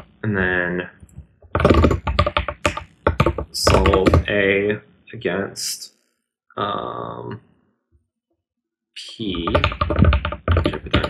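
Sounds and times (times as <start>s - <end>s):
fast typing on keyboard: 1.6s - 4.4s, 9.3s - 11.0s.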